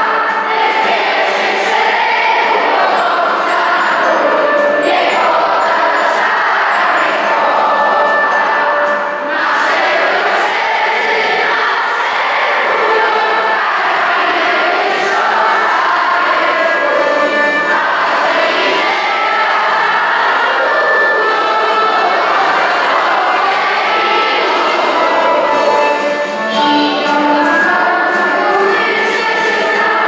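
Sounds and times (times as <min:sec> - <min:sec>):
children singing together: 0:00.0 - 0:30.0.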